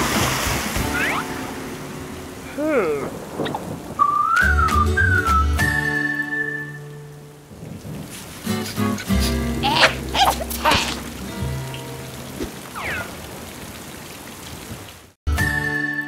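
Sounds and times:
rain hiss: 0.0 - 15.2
cartoon background music: 0.8 - 1.6, 8.6 - 11.8, 15.3 - 16.0
wordless cartoon character vocals: 2.5 - 3.2, 9.6 - 11.0.

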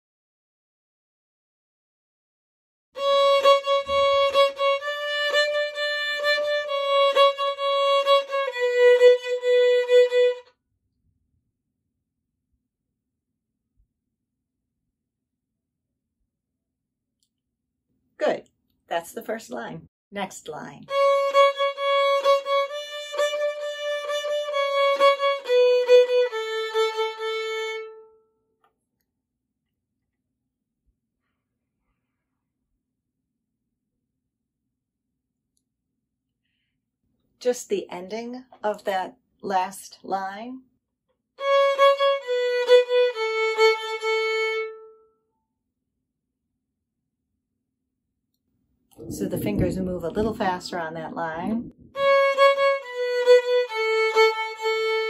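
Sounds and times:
solo violin fiddle melody: 3.0 - 10.5, 20.9 - 28.2, 41.4 - 45.0, 51.9 - 55.0.

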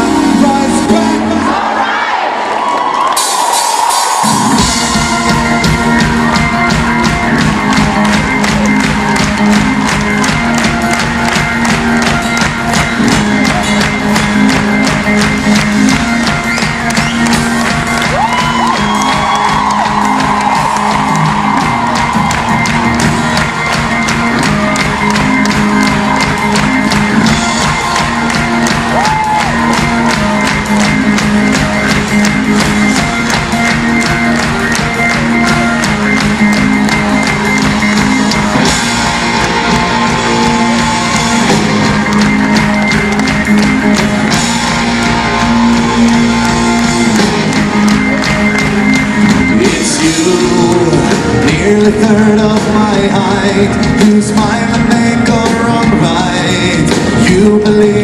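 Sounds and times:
rock band playing live: 0.0 - 1.8, 2.8 - 58.0
crowd cheering and whooping: 0.0 - 53.8.

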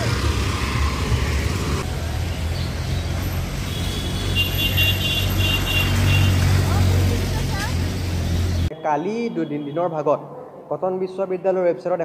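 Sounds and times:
street traffic rumble: 0.0 - 11.5
indistinct voices of passers-by: 6.4 - 8.8.

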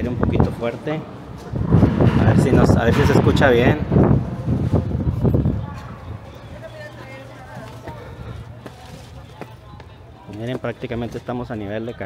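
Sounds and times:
faint distant voices: 2.4 - 12.0
footsteps on concrete steps: 5.2 - 12.0.

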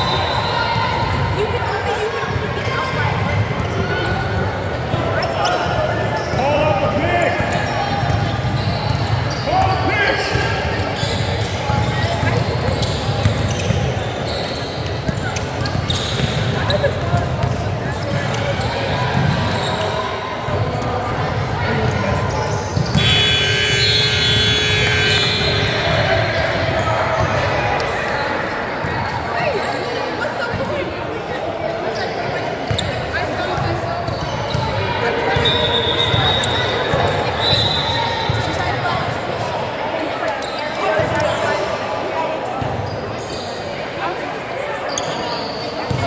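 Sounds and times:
voices of players and onlookers: 0.0 - 46.0.

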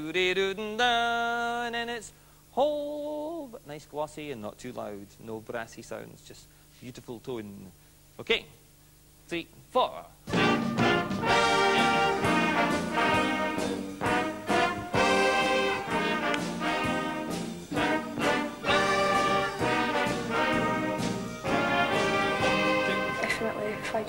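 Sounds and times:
big band horn section chords: 10.3 - 24.0.

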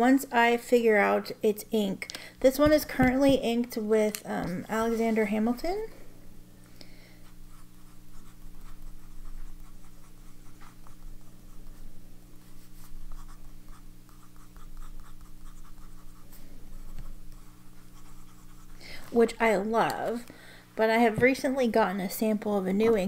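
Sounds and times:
faint low hum: 0.0 - 23.0
pen nib scratching on paper: 7.2 - 19.3.

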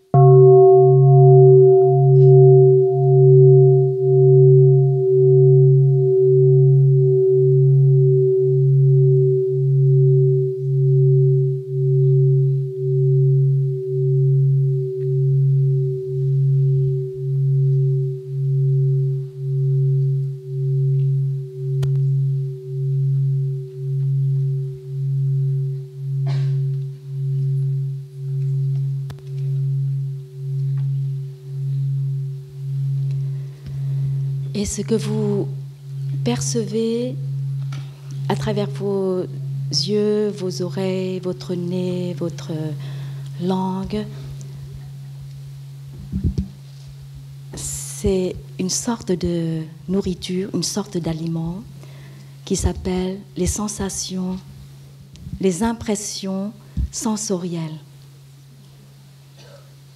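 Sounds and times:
large bowl bell ringing: 0.0 - 59.9.

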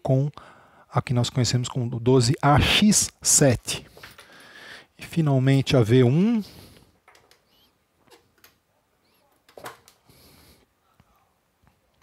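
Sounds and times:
faint high squeak: 7.4 - 7.8, 9.0 - 9.4.

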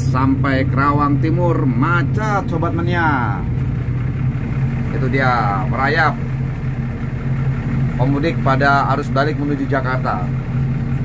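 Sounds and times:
bus diesel engine droning: 0.0 - 11.0.

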